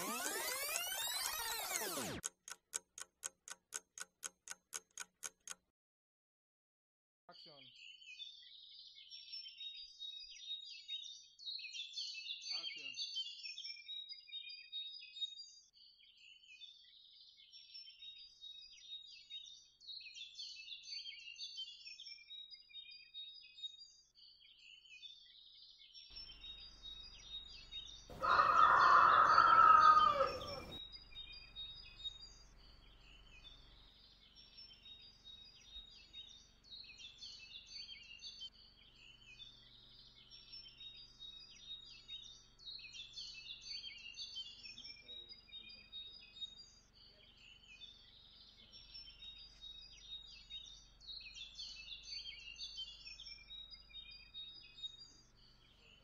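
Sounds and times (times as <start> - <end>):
small birds chirping: 0.0 - 5.6, 7.3 - 56.0
rooster crowing: 28.1 - 30.8.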